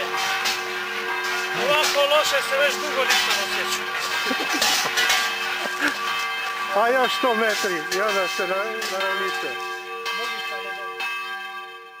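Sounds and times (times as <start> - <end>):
bell struck and ringing: 0.0 - 12.0.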